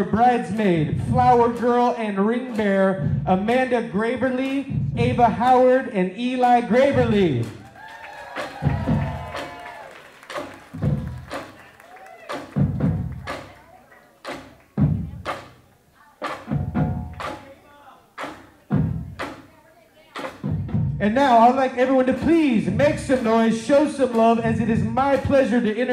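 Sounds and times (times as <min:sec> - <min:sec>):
marching bass drums: 0:00.0 - 0:05.7, 0:06.4 - 0:07.7, 0:08.4 - 0:11.6, 0:12.3 - 0:25.9.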